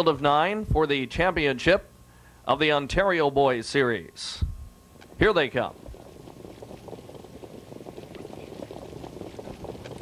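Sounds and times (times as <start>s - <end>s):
horse hoofbeats: 5.7s - 10.0s.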